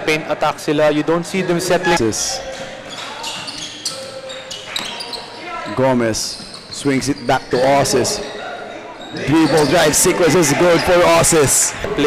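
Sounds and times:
shoes squeaking on court: 0:01.8 - 0:11.3.

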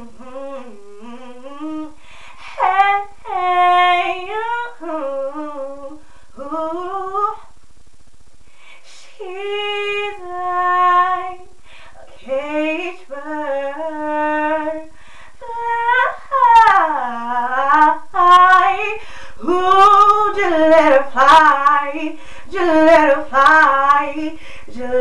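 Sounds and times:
woman singing unaccompanied: 0:00.0 - 0:07.5, 0:08.8 - 0:25.0.

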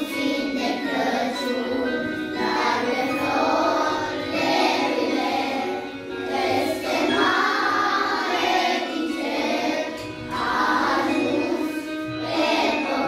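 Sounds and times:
children singing a carol: 0:00.0 - 0:13.0.

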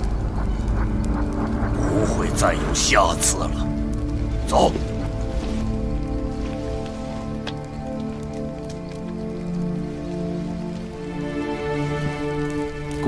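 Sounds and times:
music of long held notes: 0:00.0 - 0:13.0
steady hiss: 0:00.0 - 0:13.0
faint ticks: 0:05.1 - 0:11.1.

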